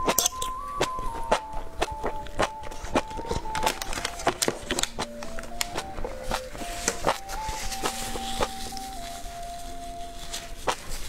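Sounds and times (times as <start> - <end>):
wet chewing clicks: 0.0 - 9.1
background music: 0.0 - 11.0.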